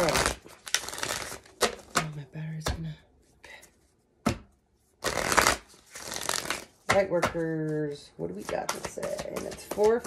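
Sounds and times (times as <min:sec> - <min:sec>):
cards being shuffled: 0:00.0 - 0:02.2, 0:05.0 - 0:10.0.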